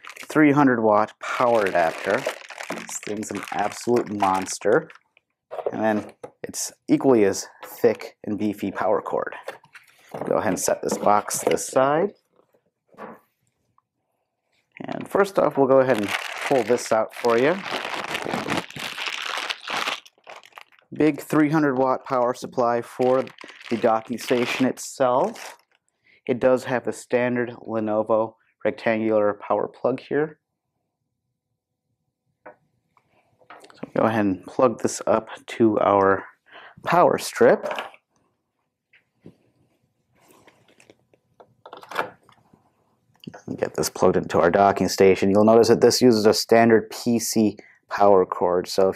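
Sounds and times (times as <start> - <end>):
plastic bag crinkling: 0.0 - 0.4, 1.2 - 5.9, 15.3 - 25.8.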